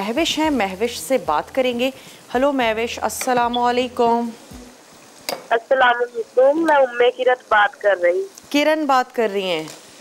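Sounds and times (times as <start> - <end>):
woman talking: 0.0 - 4.7, 5.5 - 9.8
vegetables sizzling in oil: 0.0 - 10.0.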